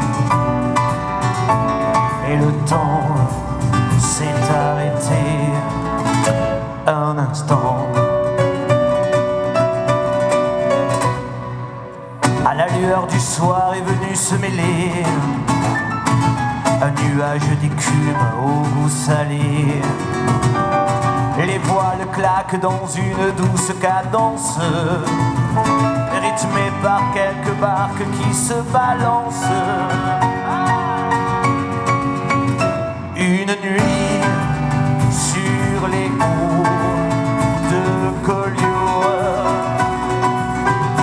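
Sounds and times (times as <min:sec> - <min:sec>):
drums: 0:00.0 - 0:11.6, 0:12.2 - 0:41.0
acoustic guitar: 0:00.0 - 0:41.0
double bass: 0:00.0 - 0:41.0
keyboard: 0:00.0 - 0:41.0
live band music: 0:00.0 - 0:41.0
person singing: 0:02.0 - 0:08.4, 0:12.2 - 0:15.8, 0:16.7 - 0:20.6, 0:21.2 - 0:32.2, 0:32.9 - 0:41.0.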